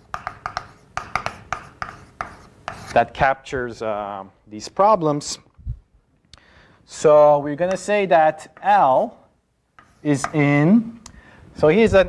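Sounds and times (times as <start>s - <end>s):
chalk scratching on blackboard: 0.0s - 3.2s, 9.8s - 10.6s.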